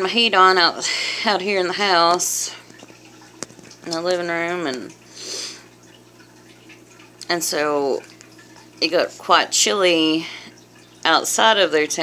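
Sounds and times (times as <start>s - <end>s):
aquarium low hum: 0.0s - 12.0s
water trickling: 0.0s - 12.0s.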